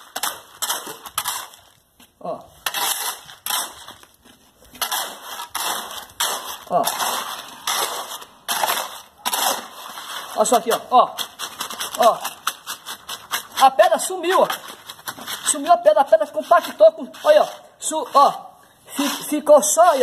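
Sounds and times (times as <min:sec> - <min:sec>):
shovel scraping wet concrete: 0:00.0 - 0:20.0.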